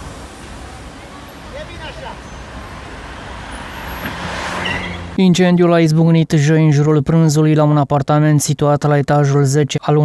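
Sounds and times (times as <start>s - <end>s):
vehicle engines running: 0.0s - 5.3s
street traffic: 0.0s - 6.6s.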